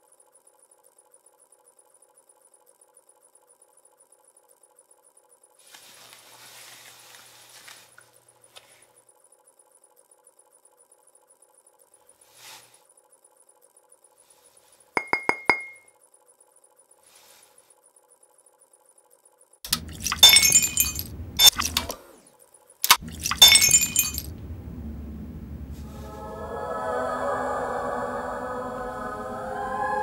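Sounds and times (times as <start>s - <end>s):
faint steady hum: 0.0s - 30.0s
drinking glass clinking: 15.0s - 15.8s, 19.7s - 22.0s, 22.9s - 24.3s.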